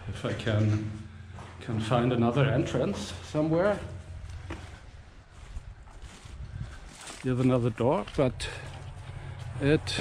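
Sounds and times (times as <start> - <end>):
faint footsteps: 0.0 - 10.0.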